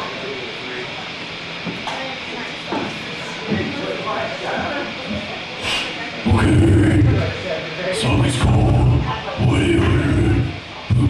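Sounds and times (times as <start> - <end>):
indistinct voices and chatter: 0.0 - 11.0
loud amplified electric guitar: 6.2 - 7.4, 8.0 - 11.0.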